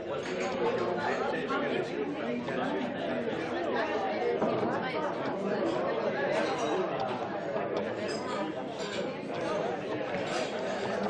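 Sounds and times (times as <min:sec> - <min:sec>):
hubbub of overlapping conversation: 0:00.0 - 0:11.0.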